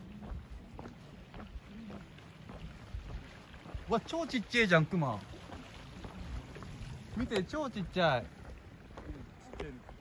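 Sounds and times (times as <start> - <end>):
footsteps on wooden boardwalk: 0.0 - 10.0.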